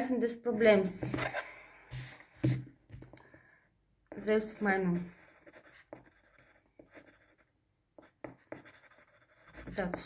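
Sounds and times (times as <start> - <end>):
pen scratching on paper: 0.6 - 2.6, 4.1 - 10.0.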